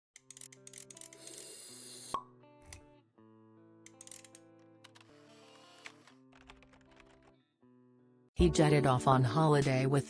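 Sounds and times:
quiet music with held notes: 0.2s - 10.0s.

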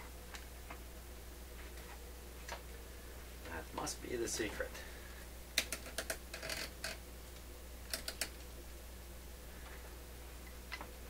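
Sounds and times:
amplifier parts clicking and tapping: 5.6s - 8.5s.

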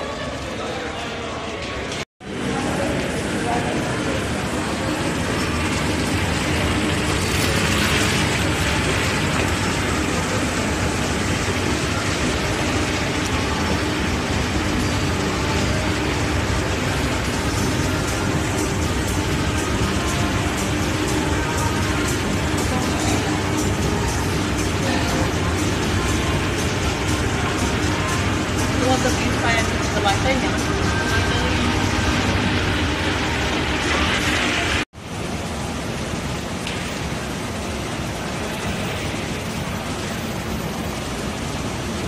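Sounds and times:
escalator running: 2.3s - 34.8s.

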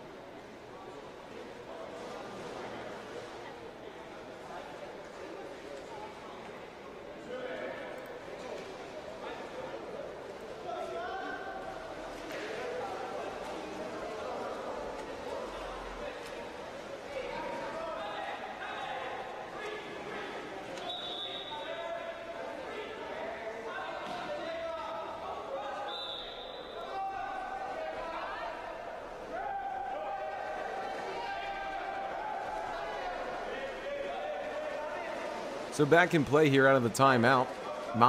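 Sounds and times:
indistinct echoing voices: 6.7s - 38.0s.

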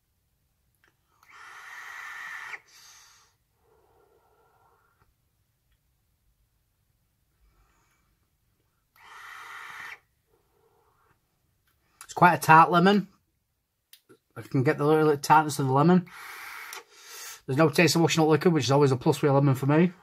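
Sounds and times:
soft exhale: 1.1s - 5.1s, 9.0s - 11.2s, 16.1s - 17.5s
vape draw air hissing: 1.2s - 3.2s, 9.0s - 10.1s, 16.1s - 17.3s.

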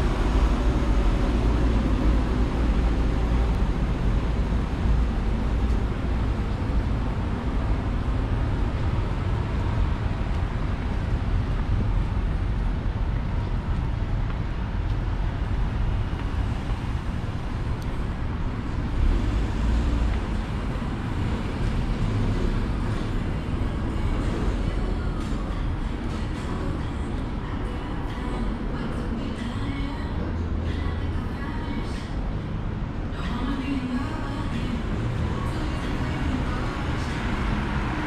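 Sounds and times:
road traffic rumble: 0.0s - 38.0s.

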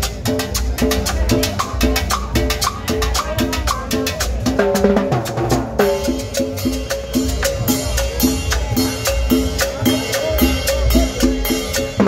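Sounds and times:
band playing latin dance music: 0.0s - 12.0s
drum and percussion strikes: 0.0s - 12.0s.

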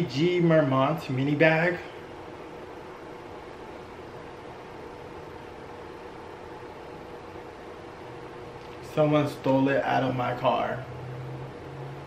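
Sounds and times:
faint constant hum: 0.0s - 12.0s
room hiss: 0.0s - 12.0s.

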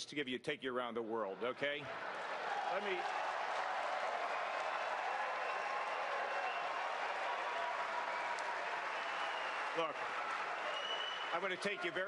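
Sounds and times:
audience applauding: 1.9s - 12.0s.

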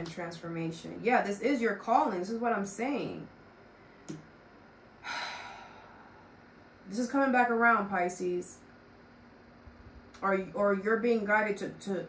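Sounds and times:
woman sighing: 5.0s - 6.2s.

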